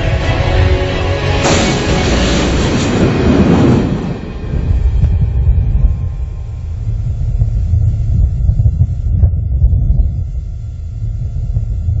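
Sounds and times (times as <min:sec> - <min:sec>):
loud deep rumble: 0:00.0 - 0:12.0.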